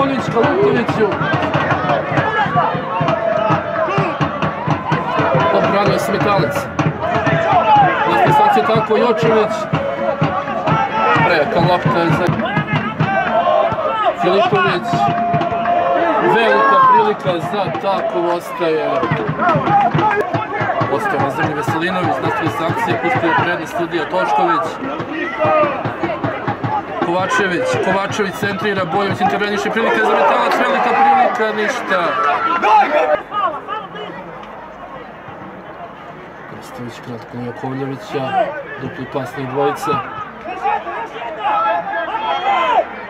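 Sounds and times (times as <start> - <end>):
sports commentator speaking: 0.0 - 1.4, 5.4 - 6.8, 8.0 - 9.8, 11.0 - 12.8, 14.1 - 15.2, 16.2 - 25.8, 26.9 - 33.2, 36.5 - 40.1
crowd noise: 0.0 - 43.0
voices talking and calling: 0.0 - 43.0.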